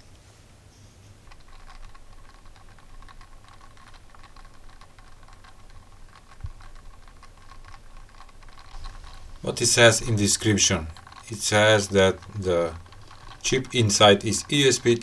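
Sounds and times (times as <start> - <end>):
rapid small clicks and ticks: 1.2 - 15.0.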